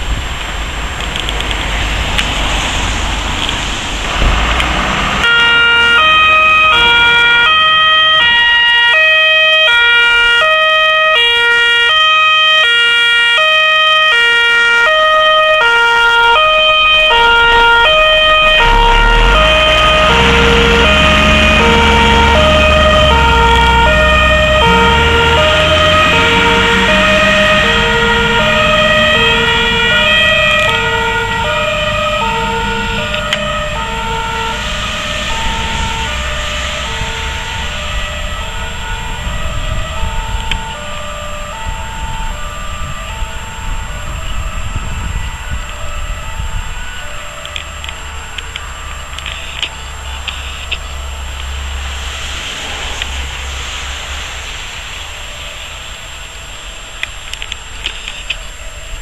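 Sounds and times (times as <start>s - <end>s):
truck engine rumbling: 0.0s - 59.0s
two-tone fire engine siren: 1.1s - 59.0s.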